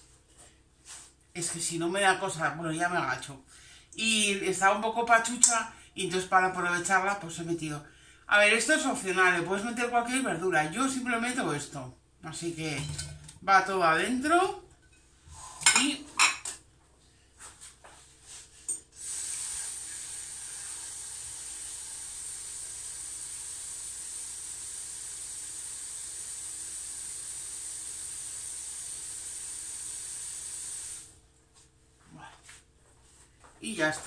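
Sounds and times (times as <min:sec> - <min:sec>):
metal pot clinking: 0:12.7 - 0:13.4
tap water running into pot: 0:19.0 - 0:31.1.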